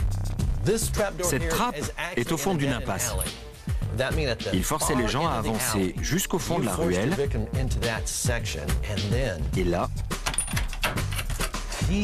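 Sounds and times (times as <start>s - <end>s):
trapdoor rattling clicks and knocks: 10.1s - 11.7s.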